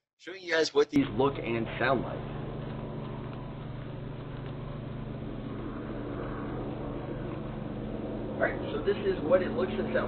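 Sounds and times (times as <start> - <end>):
helicopter drone: 0.5 - 10.0.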